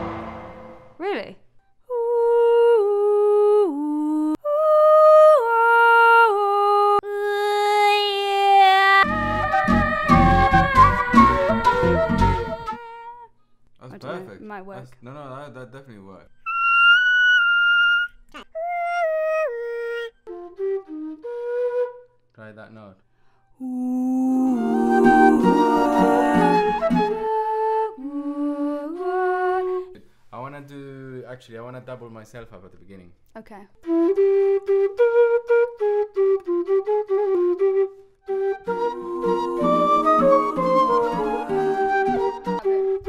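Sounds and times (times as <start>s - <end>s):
flute playing slow melody: 9.0s - 13.2s, 16.5s - 22.2s, 23.7s - 29.9s, 33.8s - 43.0s
instrumental music: 9.0s - 13.2s, 16.5s - 22.2s, 24.4s - 30.0s, 33.8s - 43.0s.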